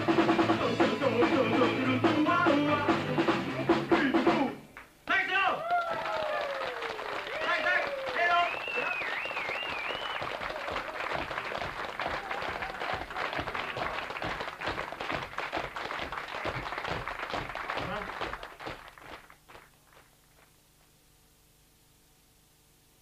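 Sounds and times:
audience cheering: 0:05.3 - 0:19.0
audience applauding: 0:05.6 - 0:20.5.

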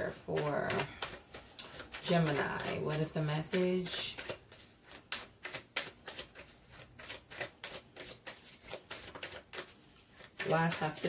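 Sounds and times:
cards being shuffled: 0:00.4 - 0:11.0.

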